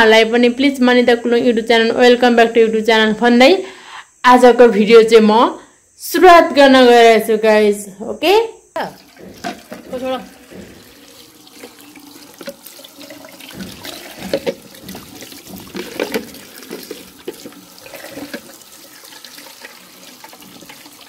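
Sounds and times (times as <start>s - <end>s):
tap water running into basin: 8.8s - 21.0s
knocks: 9.0s - 18.4s
hands splashing fruit in bowl: 9.0s - 21.0s.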